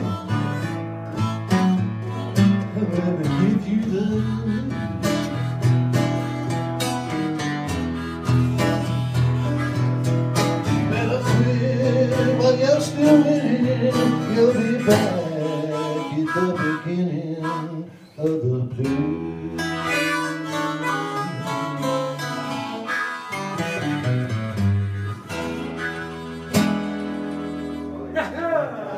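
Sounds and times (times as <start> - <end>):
harmonica playing held notes: 0.0 - 18.2, 19.2 - 28.2
acoustic guitar strummed: 0.0 - 28.4.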